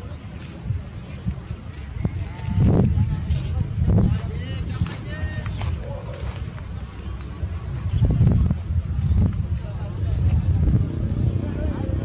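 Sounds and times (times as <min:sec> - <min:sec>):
faint distant voices: 0:00.0 - 0:12.0
wind buffeting microphone: 0:00.0 - 0:12.0.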